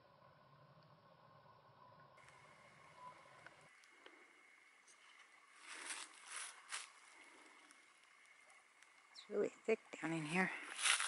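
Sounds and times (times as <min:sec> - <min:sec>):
dry leaves and twigs crunching: 0:04.8 - 0:08.2, 0:10.4 - 0:11.0.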